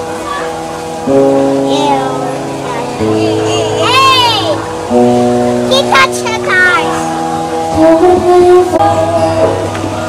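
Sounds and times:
child's voice: 0.2 - 0.6, 1.6 - 4.6, 5.6 - 7.1
upbeat guitar music: 1.1 - 7.5.

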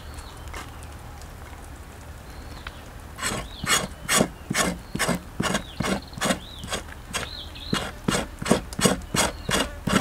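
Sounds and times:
knife scraping grilled skin: 3.2 - 10.0.

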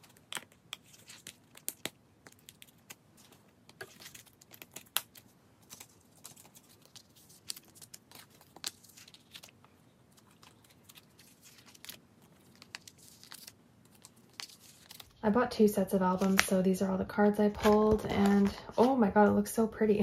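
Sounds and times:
plastic sleeve crinkling: 0.0 - 15.3.

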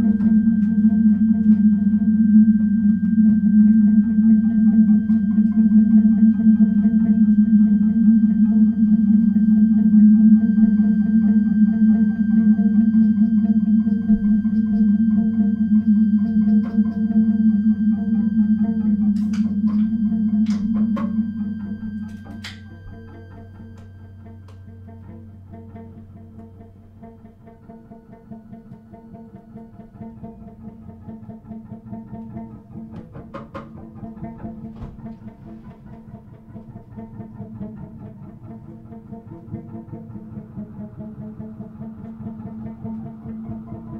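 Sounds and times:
low drone: 0.0 - 33.0
pulsing guitar and electronics figure: 0.0 - 43.9.

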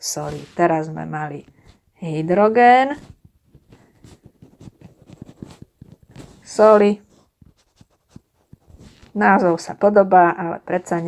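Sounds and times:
stylus tapping and scraping screen: 0.0 - 11.0.

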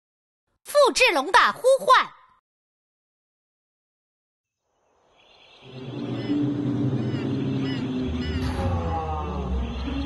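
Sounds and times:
bird chirps: 4.7 - 8.6
low forest rumble: 4.9 - 10.0.

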